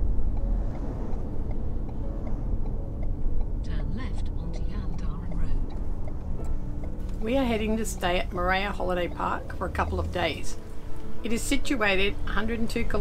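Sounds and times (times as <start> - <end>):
engine and tyre rumble: 0.0 - 13.0.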